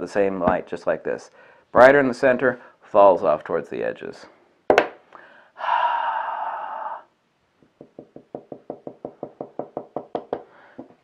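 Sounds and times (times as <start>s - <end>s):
long breathy exhale: 5.2s - 7.1s
fingers tapping a tabletop: 7.7s - 11.0s.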